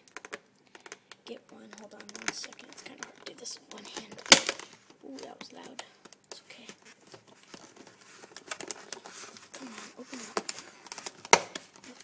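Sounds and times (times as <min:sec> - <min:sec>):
plastic snaps: 0:00.0 - 0:06.4, 0:10.3 - 0:12.0
plastic container crinkling: 0:00.0 - 0:12.0.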